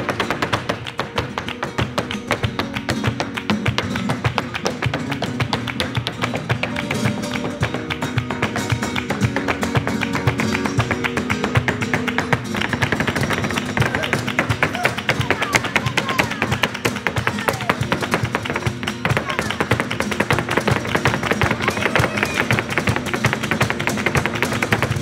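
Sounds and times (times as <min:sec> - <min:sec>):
fast flamenco footwork: 0:00.0 - 0:25.0
flamenco guitar: 0:00.0 - 0:25.0.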